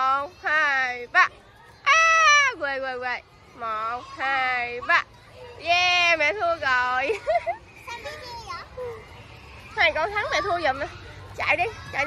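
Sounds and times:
young children chattering: 0.0s - 12.0s.

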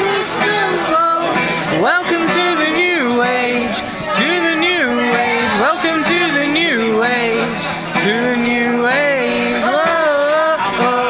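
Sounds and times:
acoustic guitar strumming: 0.0s - 11.0s
woman singing: 0.0s - 11.0s.

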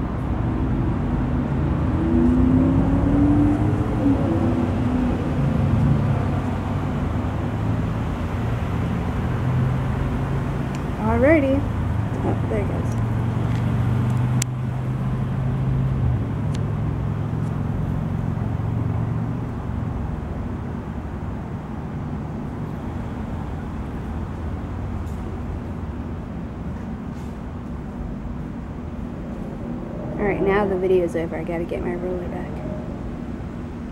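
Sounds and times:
low motor hum: 0.0s - 33.9s
low outdoor rumble: 0.0s - 33.9s.

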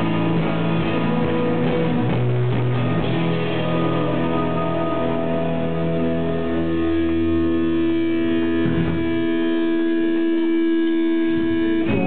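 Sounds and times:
electric guitars droning note: 0.0s - 12.0s.

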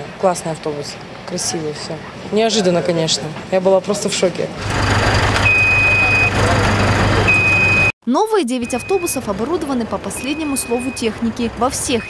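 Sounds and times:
high electronic warning beep: 5.4s - 6.4s, 7.3s - 7.9s, 8.6s - 9.3s, 10.0s - 12.0s.

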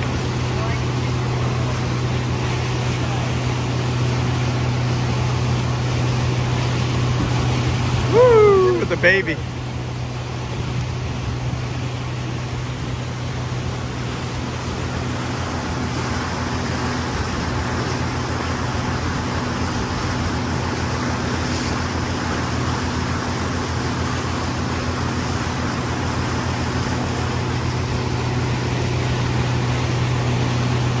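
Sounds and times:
churning wake water: 0.0s - 31.0s
outboard motor running: 0.0s - 31.0s.

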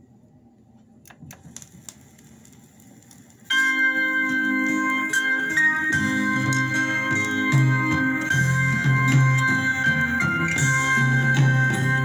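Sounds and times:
vinyl surface noise: 0.6s - 12.0s
song with sustained chords: 3.5s - 12.0s.

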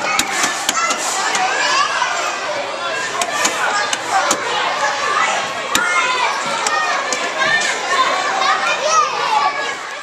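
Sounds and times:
children shouting and playing: 0.0s - 10.0s.

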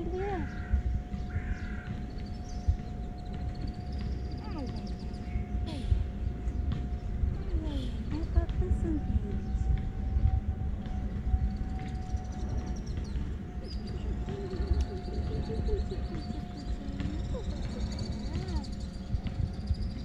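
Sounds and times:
steady low rumble: 0.0s - 20.0s.

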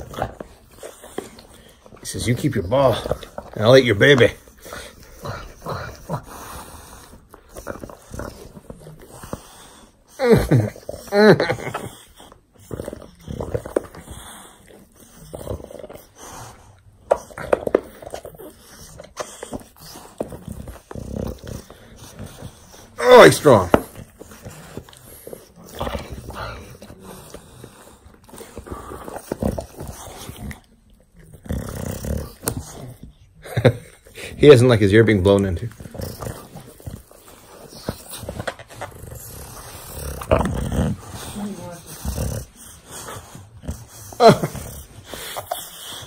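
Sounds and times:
dog breathing and mouth noises: 0.0s - 46.0s
dog chewing ball toy: 0.0s - 46.0s.

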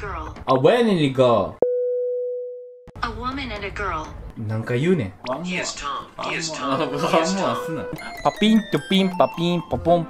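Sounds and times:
person speaking: 6.3s - 10.0s.

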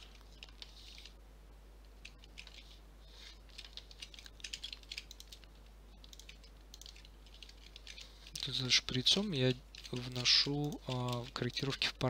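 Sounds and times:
keyboard keys clicking: 2.0s - 2.6s, 3.5s - 8.5s.

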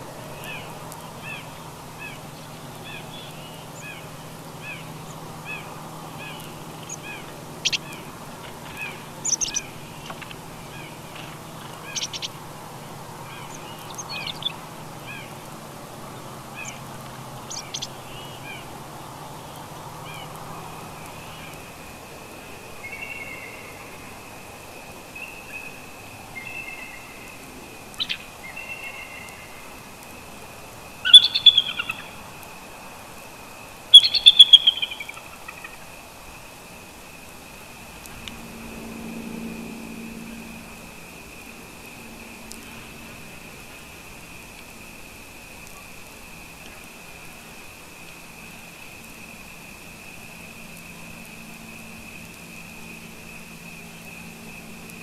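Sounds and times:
small birds chirping: 0.0s - 24.2s, 25.1s - 32.6s, 33.8s - 36.4s
eagle high chattering calls: 0.4s - 12.4s, 13.3s - 15.3s, 31.0s - 32.2s, 33.9s - 35.8s.

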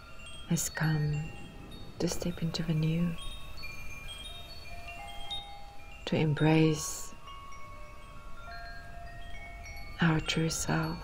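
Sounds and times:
low steady hum: 0.0s - 11.0s
wind chimes ringing: 0.0s - 11.0s.

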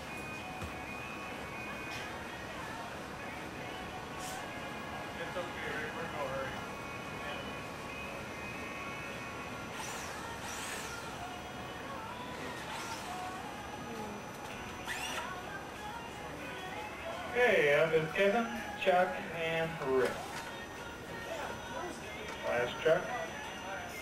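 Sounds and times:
background music: 0.0s - 24.0s.

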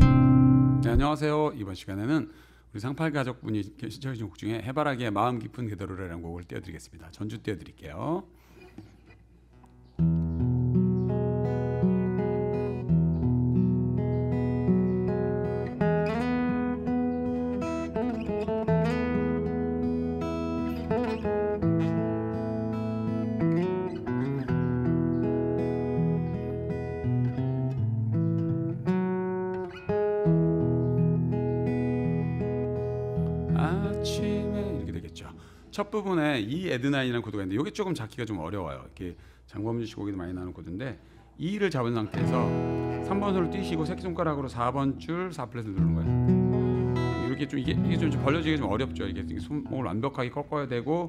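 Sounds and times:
acoustic guitar fingerstyle: 0.0s - 1.1s, 8.4s - 35.6s, 42.0s - 50.9s.

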